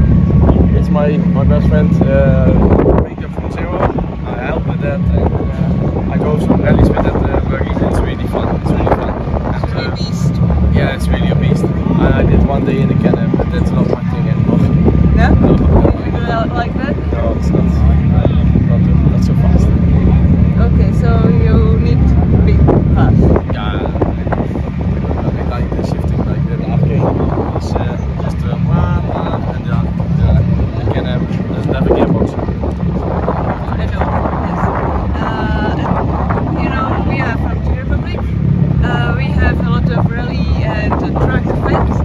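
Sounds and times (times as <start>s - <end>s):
loud low rumble: 0.0s - 42.0s
wind buffeting microphone: 0.0s - 42.0s
two people talking: 0.2s - 42.0s.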